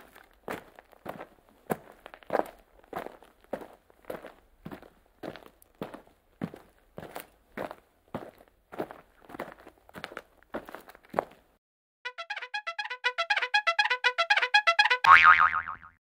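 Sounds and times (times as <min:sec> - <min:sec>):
footsteps walking: 0:00.0 - 0:11.5.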